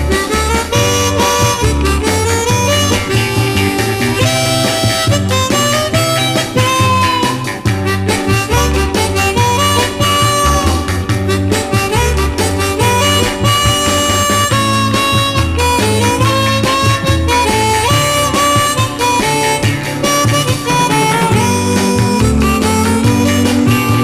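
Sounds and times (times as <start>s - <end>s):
band playing steady beat: 0.0s - 24.0s
harmonica melody: 0.0s - 24.0s.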